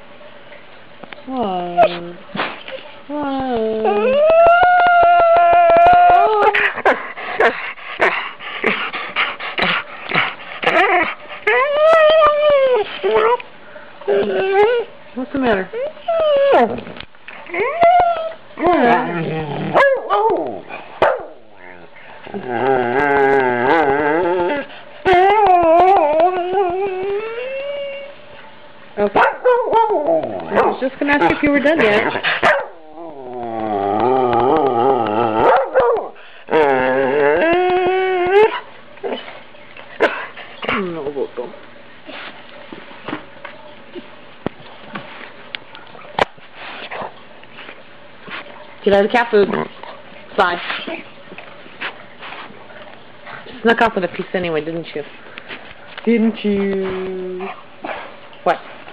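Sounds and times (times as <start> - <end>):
dog howling: 3.1 - 7.5, 10.6 - 13.4, 14.0 - 14.9, 15.5 - 16.8, 17.4 - 20.7, 21.8 - 28.2, 31.7 - 39.2
dog howling call: 3.8 - 6.6
dog whining and yipping: 10.6 - 13.4, 14.1 - 14.9, 15.7 - 16.8, 17.5 - 20.3, 23.0 - 28.1.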